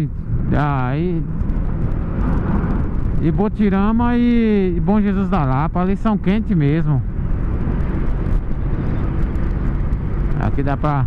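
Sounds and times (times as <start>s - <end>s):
motorcycle engine cruising: 0.0s - 11.0s
wind rushing on microphone: 0.0s - 11.0s.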